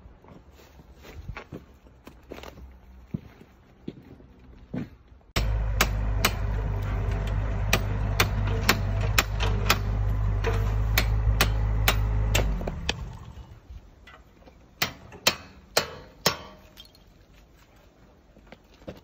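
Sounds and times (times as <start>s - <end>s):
low engine hum: 5.4s - 13.8s.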